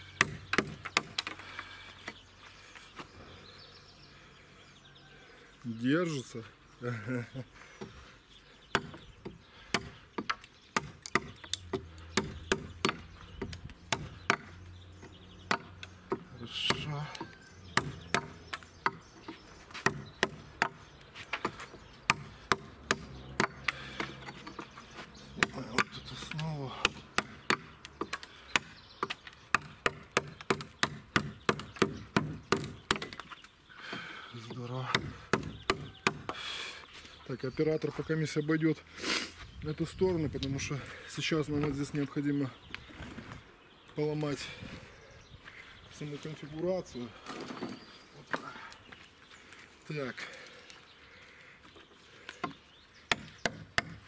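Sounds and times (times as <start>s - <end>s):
mallet striking chisel into wood: 17.8s - 19.0s, 19.8s - 20.8s, 26.8s - 33.2s, 34.9s - 36.4s, 53.1s - 54.0s.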